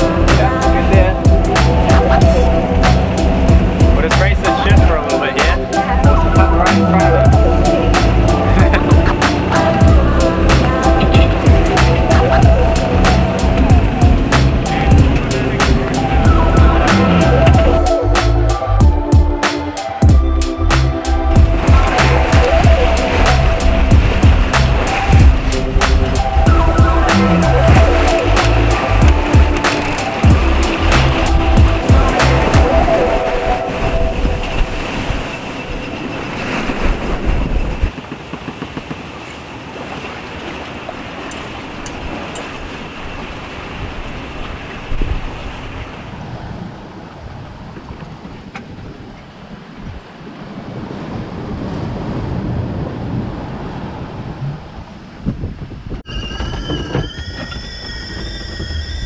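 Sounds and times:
music with a beat: 0.0s - 33.1s
wind and water around boat: 0.0s - 59.0s
kettle whistling: 56.0s - 59.0s.

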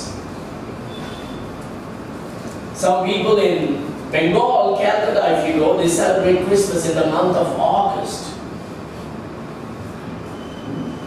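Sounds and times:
room hiss and rumble: 0.0s - 11.0s.

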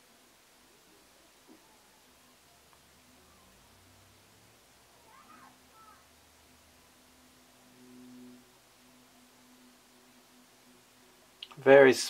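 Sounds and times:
faint low hum: 0.0s - 12.0s
faint wavering cry: 4.9s - 6.2s.

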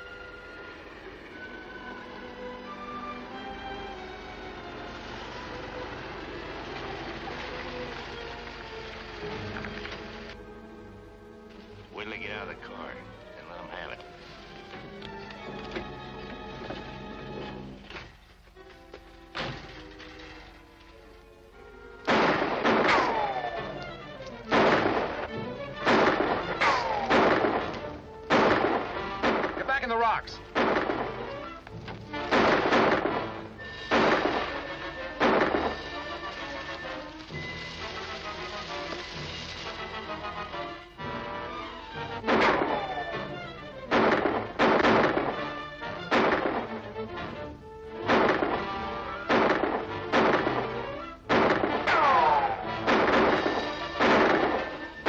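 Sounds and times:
background music: 0.0s - 55.0s
gunshots: 22.0s - 23.8s, 24.5s - 31.5s, 32.1s - 38.9s, 42.2s - 47.0s, 48.0s - 55.0s.

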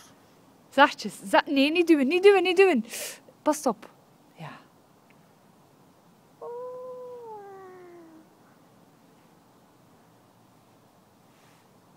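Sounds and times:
toddler vocalizing ooh: 6.4s - 8.3s.

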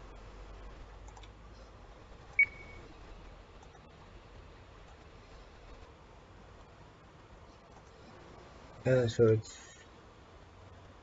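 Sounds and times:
short high electronic beep: 2.4s - 2.8s.

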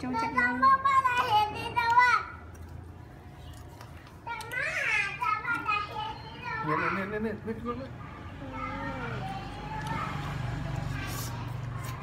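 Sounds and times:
child's high-pitched voice: 0.1s - 2.4s, 4.2s - 7.1s, 8.0s - 11.9s.

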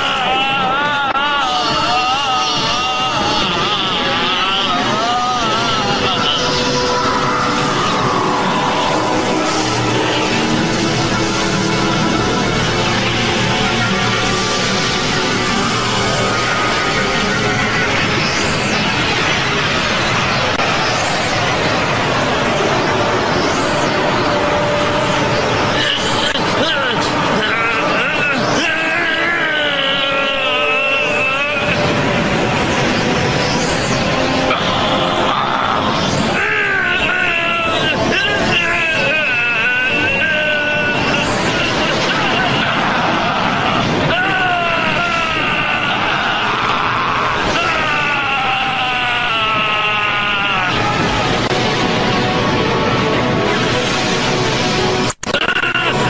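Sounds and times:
strained wavering shout: 0.0s - 51.6s
loud steady rushing noise: 0.0s - 56.0s
man shouting strained yell: 36.6s - 41.2s.

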